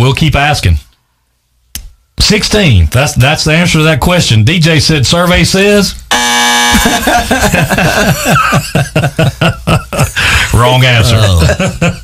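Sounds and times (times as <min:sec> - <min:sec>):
game show buzzer: 0:06.1 - 0:07.5
men laughing: 0:06.7 - 0:12.0.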